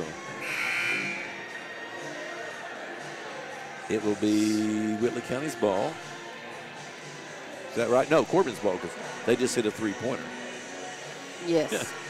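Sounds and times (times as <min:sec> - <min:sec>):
scoreboard buzzer: 0:00.4 - 0:01.4.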